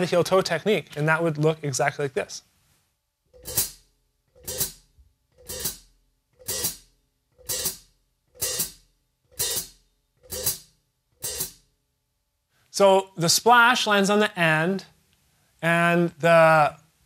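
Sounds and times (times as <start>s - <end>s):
hi-hat pedal chick: 3.4s - 3.8s, 4.4s - 4.8s, 5.4s - 11.7s.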